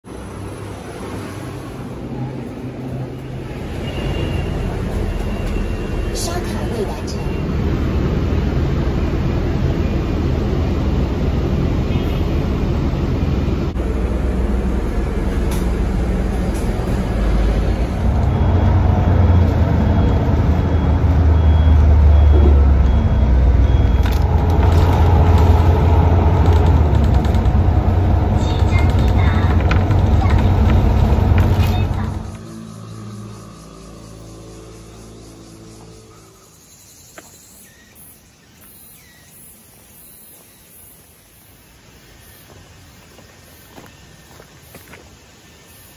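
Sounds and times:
bus engine and road rumble: 0.0s - 38.7s
indistinct voices: 13.7s - 35.0s
short electronic beep: 18.3s - 24.9s.

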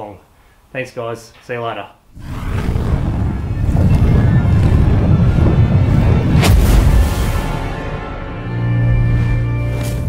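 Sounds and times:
deep boom with rumbling tail: 2.1s - 8.1s
cinematic logo music: 4.5s - 10.0s.

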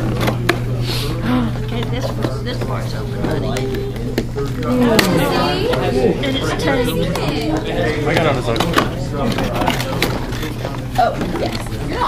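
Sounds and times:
steady low hum: 0.0s - 12.0s
indistinct conversation: 0.4s - 12.0s.

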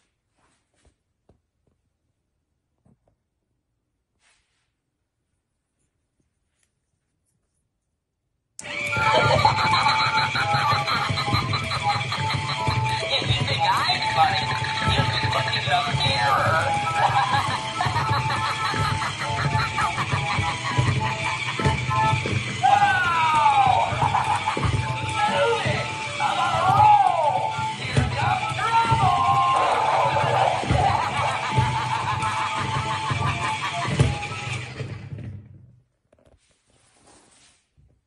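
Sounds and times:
creepy music: 8.6s - 34.8s
prop voice: 13.0s - 17.3s.

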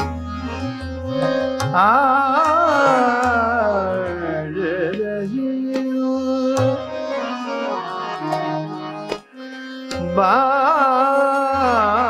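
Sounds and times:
harmonium and tanpura drone: 0.0s - 12.0s
man singing ornamented melody: 1.2s - 7.3s, 9.9s - 12.0s.

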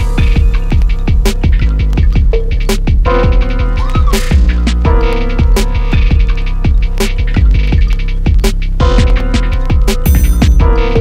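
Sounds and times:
heavy bass kick: 0.0s - 11.0s
hi-hat and snare hits: 0.0s - 11.0s
steady low bass: 0.0s - 11.0s.

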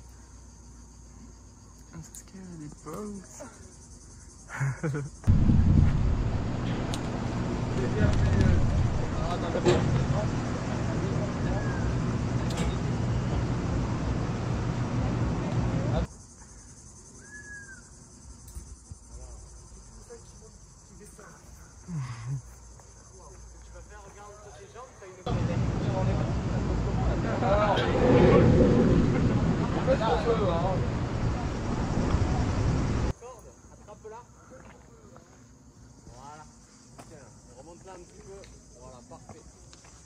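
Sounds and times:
low rumble: 5.3s - 16.0s, 25.3s - 33.1s
wind rushing over microphone: 5.3s - 16.1s, 25.4s - 33.1s
whistle-like call: 17.2s - 17.9s.

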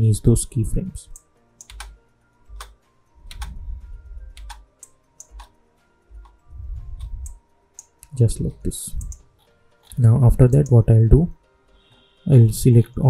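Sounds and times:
faint background music: 0.0s - 13.0s
keyboard and mouse clicks: 1.1s - 2.0s, 2.6s - 3.6s, 4.3s - 5.6s, 6.2s - 8.2s, 8.9s - 9.2s, 9.8s - 10.8s.

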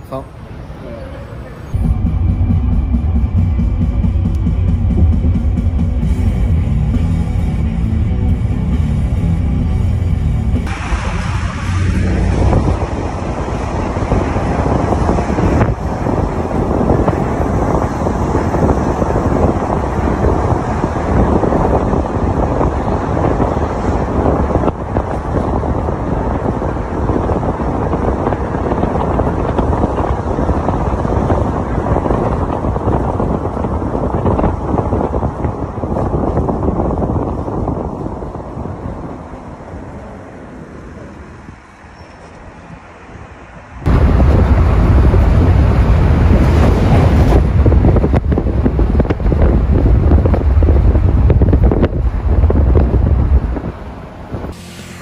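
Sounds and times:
car road noise: 0.0s - 55.0s
low wind buffeting: 0.0s - 55.0s
wind noise on microphone: 0.0s - 55.0s.

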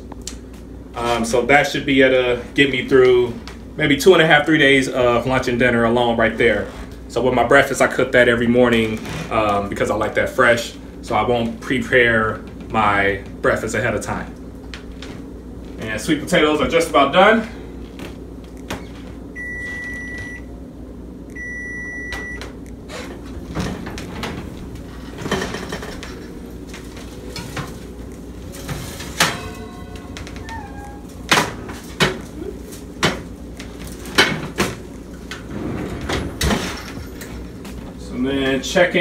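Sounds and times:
oven timer beeping: 19.4s - 20.5s, 21.3s - 22.6s
oven door opening clatter: 22.9s - 32.4s, 33.0s - 37.8s
oven rack and pans knocking: 23.4s - 26.5s, 28.5s - 30.4s.

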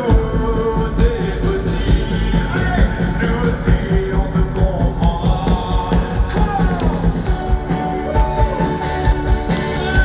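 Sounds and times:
rock band playing live: 0.0s - 10.0s
steady drum beat: 0.0s - 10.0s.

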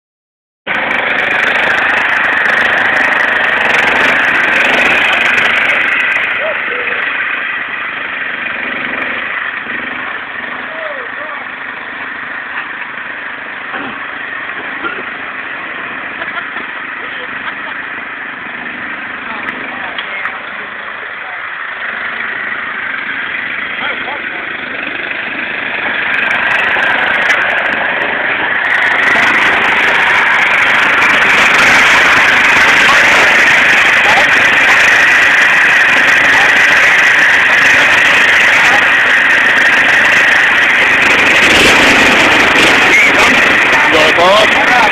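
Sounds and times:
lawn tractor engine running: 0.7s - 44.9s.

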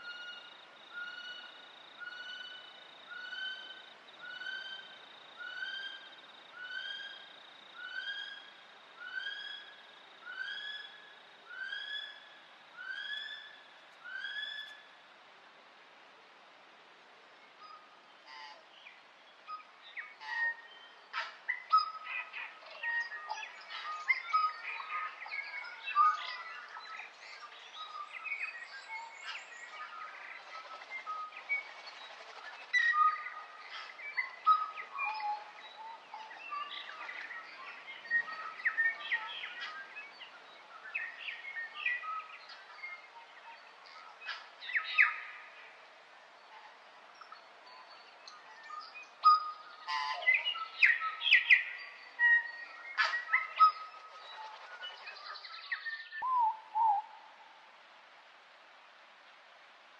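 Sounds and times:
birds chirping and calling: 48.3s - 57.0s.

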